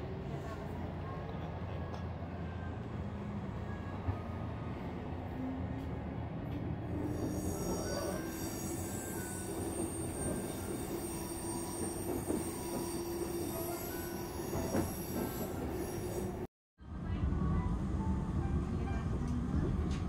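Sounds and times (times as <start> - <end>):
steady train hum: 0.0 - 20.0.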